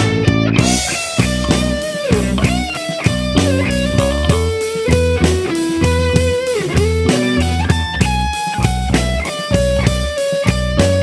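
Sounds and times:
bass guitar: 0.0 - 11.0
drums keeping steady beat: 0.0 - 11.0
lead electric guitar with pitch bends: 0.0 - 11.0.

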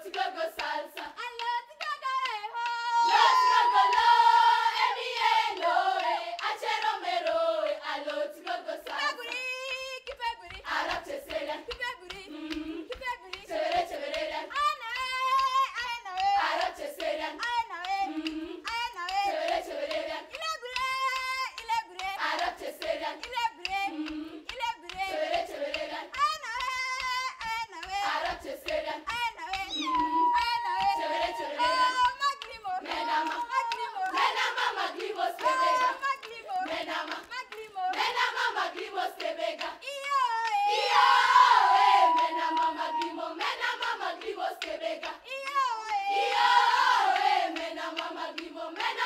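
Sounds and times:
girls' choir singing: 0.0 - 1.4, 2.3 - 20.8, 21.6 - 26.4, 27.4 - 49.0
hand claps: 0.0 - 49.0.

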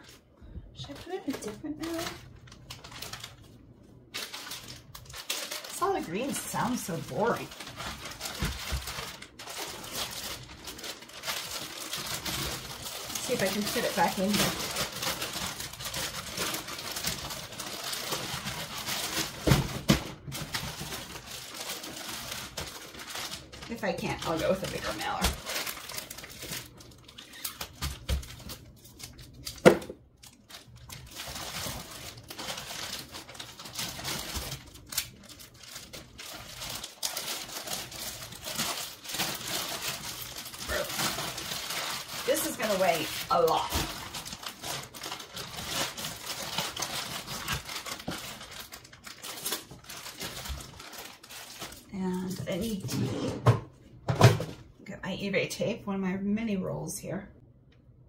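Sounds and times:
plastic crinkling and rustling: 0.0 - 54.8.

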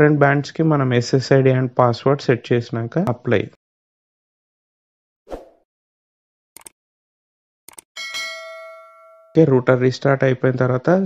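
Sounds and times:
quick clicks: 6.6 - 6.8, 7.7 - 7.9
bell chime ringing: 8.0 - 9.7.

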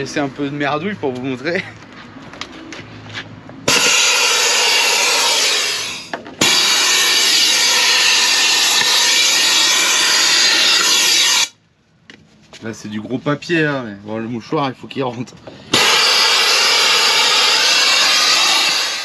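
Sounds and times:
air vacuum gun hissing: 3.7 - 11.6, 15.7 - 19.0.

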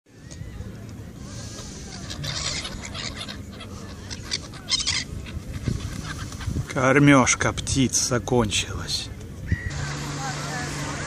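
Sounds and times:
gulls calling: 0.1 - 6.7, 9.4 - 11.0.

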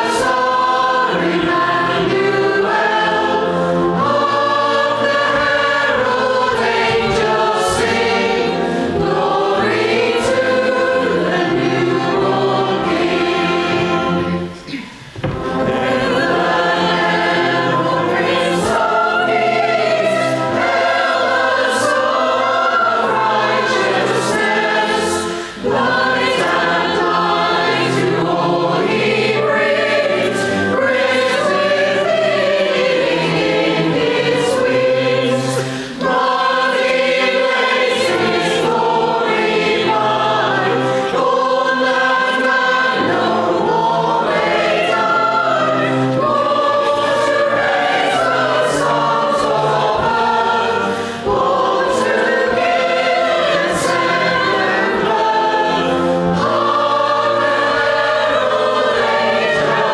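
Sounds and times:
congregation and choir singing: 0.0 - 59.9.

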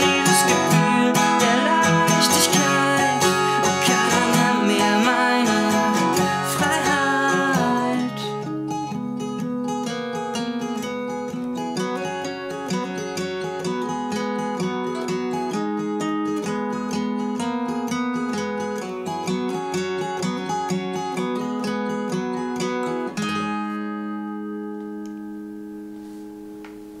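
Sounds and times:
acoustic guitar playing: 0.0 - 27.0.

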